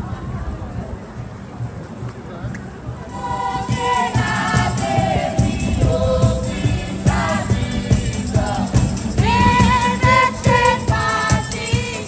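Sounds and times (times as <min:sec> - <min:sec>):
cajon beat: 0:03.1 - 0:12.0
people singing together: 0:03.1 - 0:12.0
acoustic guitar: 0:03.2 - 0:12.0.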